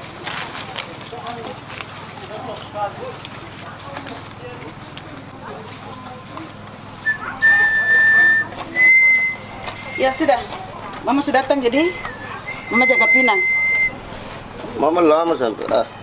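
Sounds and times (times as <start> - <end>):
faint background voices: 0.0 - 16.0
person whistling long notes: 7.0 - 10.2, 11.8 - 14.0.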